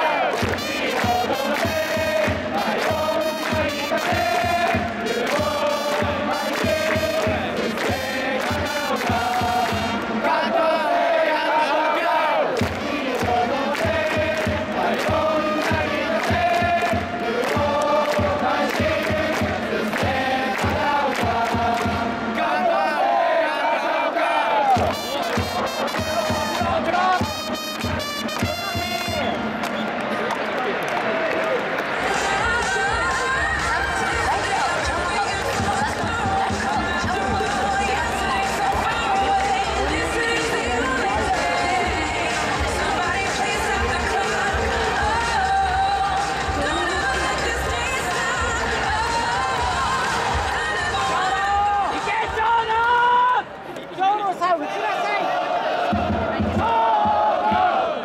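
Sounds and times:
fans chanting: 0.0s - 53.3s, 54.4s - 58.0s
drum beat: 0.4s - 10.2s, 12.6s - 22.4s, 24.7s - 29.6s, 32.9s - 50.8s, 55.9s - 57.8s
trumpets playing: 0.5s - 7.5s, 24.7s - 29.6s.

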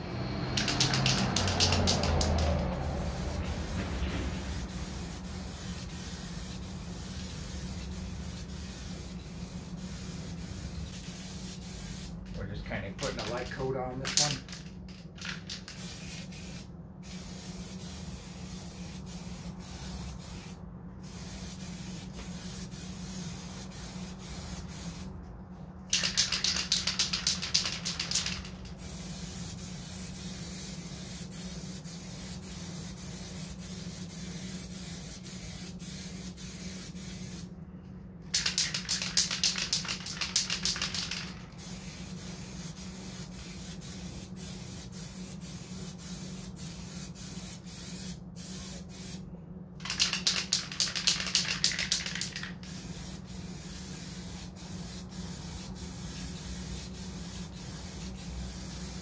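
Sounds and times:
aerosol can spraying: 0.5s - 12.4s, 13.0s - 25.1s, 25.9s - 37.5s, 38.3s - 49.2s, 49.8s - 59.0s.

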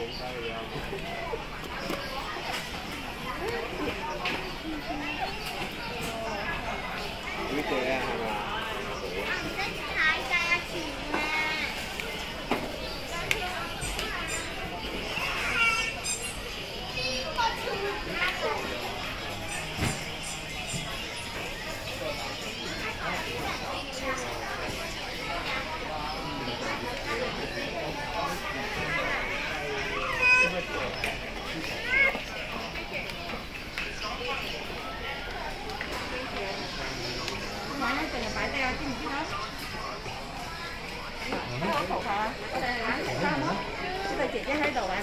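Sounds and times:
children calling and chattering: 0.0s - 45.0s
shop hubbub: 0.0s - 45.0s.

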